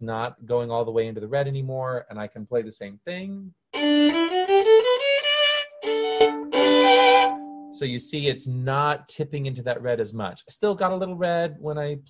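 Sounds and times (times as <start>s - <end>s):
violin scale and bowed chords: 3.8s - 8.6s.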